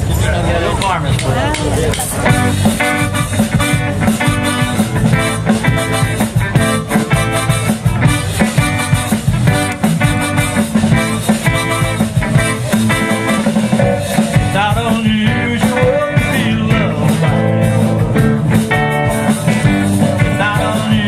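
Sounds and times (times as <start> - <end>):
live rock band playing: 0.8 - 21.0
pitch-bending guitar lead line: 1.4 - 21.0.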